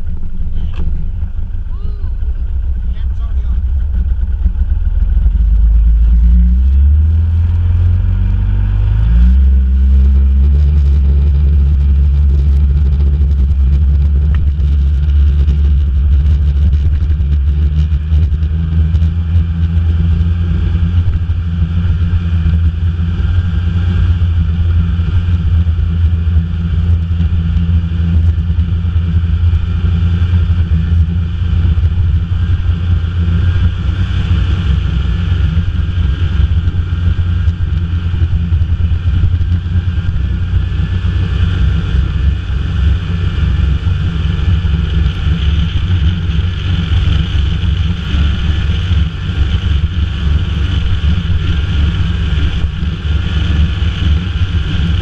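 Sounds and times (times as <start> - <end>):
snowmobile engine running: 0.0 - 55.0.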